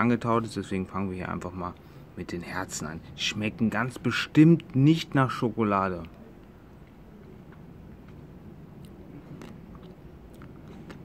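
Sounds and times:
person chewing crunchy chocolate: 0:08.8 - 0:11.0.

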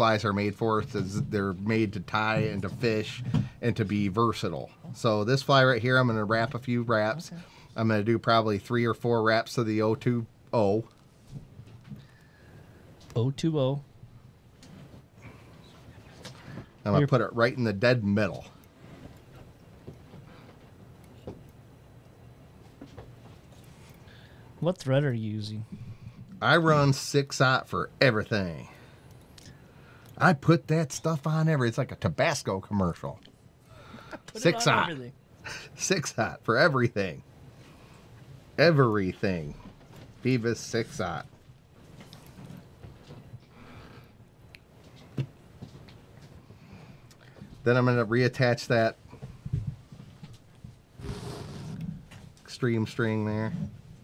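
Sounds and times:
faint clicks and handling noise: 0:41.2 - 0:47.6.

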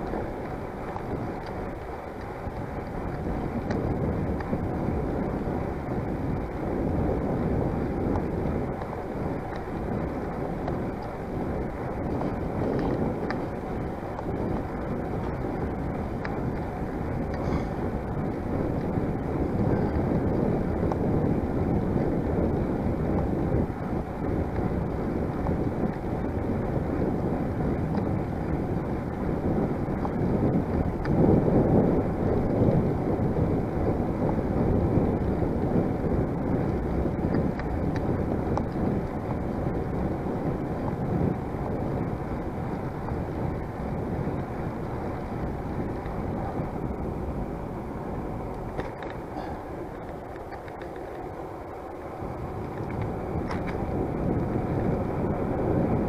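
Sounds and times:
wind rumbling on microphone: 0:00.0 - 0:56.0.

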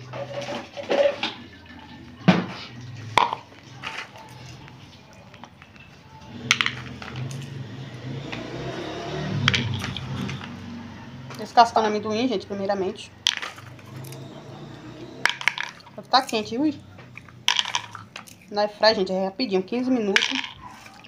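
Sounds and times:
peanuts clicking against plastic bowl: 0:09.3 - 0:10.6, 0:13.2 - 0:14.1, 0:15.2 - 0:18.6, 0:20.1 - 0:21.0
peanuts clicking into ceramic bowl: 0:17.1 - 0:18.5, 0:20.1 - 0:20.6.

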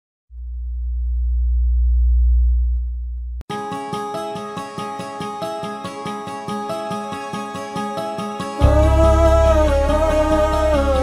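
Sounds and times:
deep electronic bass tone: 0:00.3 - 0:03.4, 0:08.6 - 0:11.0.

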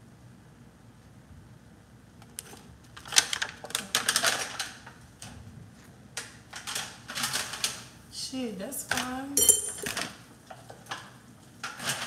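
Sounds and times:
aluminium foil crinkling: 0:02.3 - 0:05.3.

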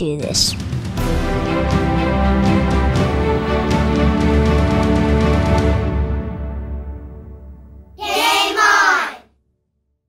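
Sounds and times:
background music: 0:00.0 - 0:09.2
child calling out: 0:08.0 - 0:09.2.

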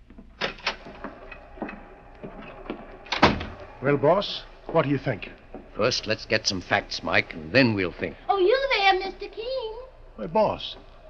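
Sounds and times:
door shutting knock: 0:01.6 - 0:03.6.

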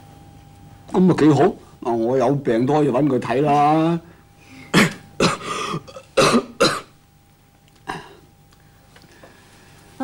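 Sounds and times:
man coughing: 0:04.6 - 0:07.0, 0:07.8 - 0:08.3.

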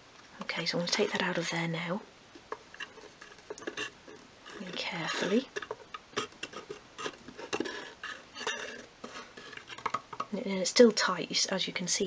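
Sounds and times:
small wooden parts clicking and tapping: 0:04.5 - 0:10.4.

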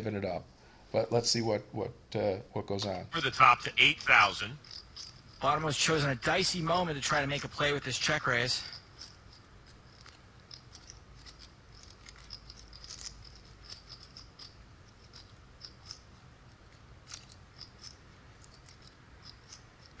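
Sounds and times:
low room hum: 0:00.0 - 0:20.0
poker chips clicking: 0:08.6 - 0:16.1, 0:17.0 - 0:20.0.

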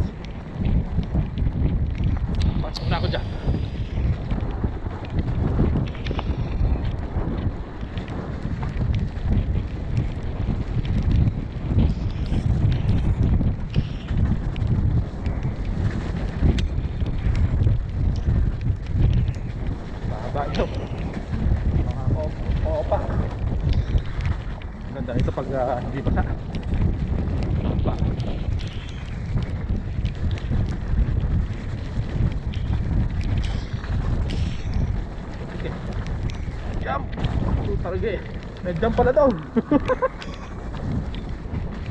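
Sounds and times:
bike tyres clicking and knocking: 0:00.0 - 0:41.9
wind buffeting microphone: 0:00.0 - 0:41.9.

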